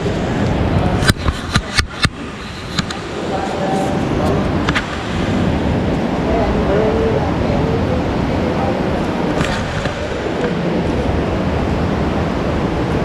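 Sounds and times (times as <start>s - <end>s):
underground stream rushing: 0.0s - 13.0s.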